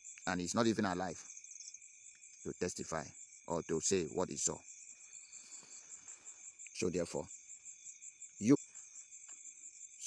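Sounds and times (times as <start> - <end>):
insects chirping: 0.0 - 10.0
man speaking: 2.5 - 4.6, 6.8 - 7.3.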